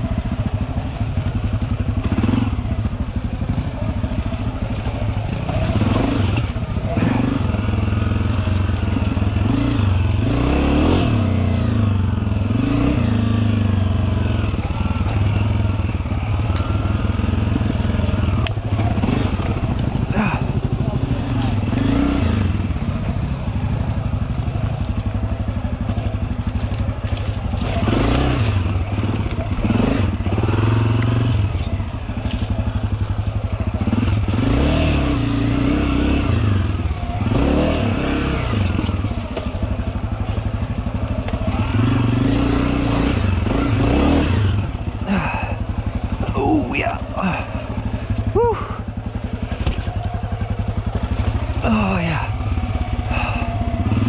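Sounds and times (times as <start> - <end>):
dirt bike engine running: 0.0 - 54.0
bike knocks and rattles: 22.8 - 34.7, 38.5 - 43.6.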